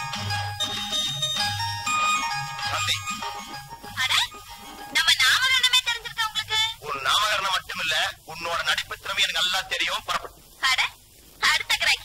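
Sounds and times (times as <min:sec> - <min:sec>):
person talking: 0:02.6 - 0:03.2, 0:03.9 - 0:12.0.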